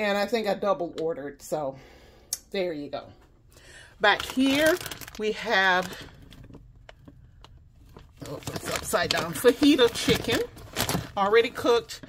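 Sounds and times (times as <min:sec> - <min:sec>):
low steady hum: 0:00.0 - 0:12.0
plastic packaging clicks: 0:04.2 - 0:05.2, 0:05.8 - 0:11.2.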